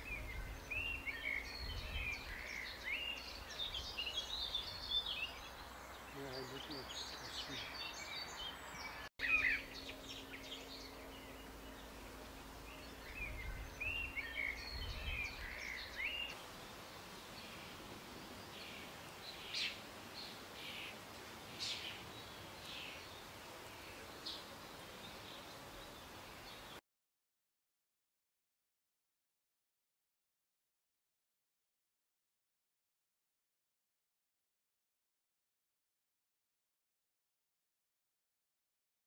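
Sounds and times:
birds chirping and calling: 0:00.0 - 0:26.8.

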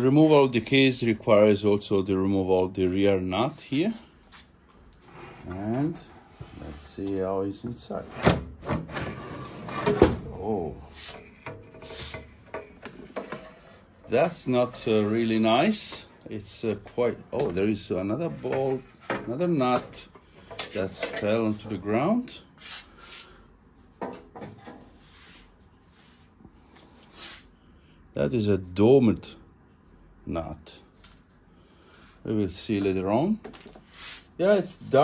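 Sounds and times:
sheet metal case scraping: 0:07.9 - 0:10.2.

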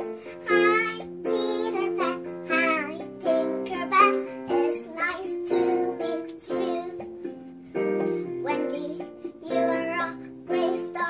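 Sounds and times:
girl singing: 0:00.0 - 0:11.0
instrumental accompaniment: 0:00.0 - 0:11.0.

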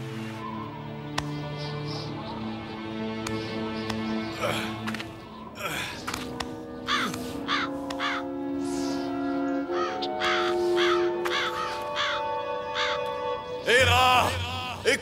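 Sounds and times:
orchestral music: 0:00.0 - 0:15.0
bird cawing: 0:01.6 - 0:13.6.

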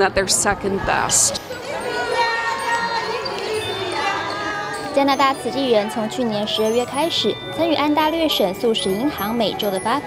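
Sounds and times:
voices of children and adults: 0:00.0 - 0:10.0.

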